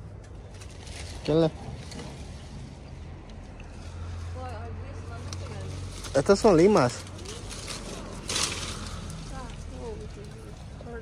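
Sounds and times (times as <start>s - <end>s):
leaves and branches rustling: 0.0s - 11.0s.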